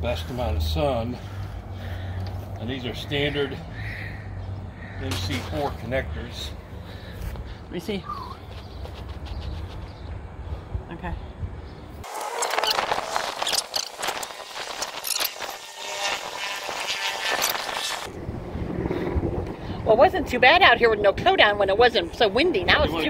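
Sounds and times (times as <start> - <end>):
wind buffeting microphone: 7.2 - 23.0
handling rustles and clicks: 12.2 - 15.6.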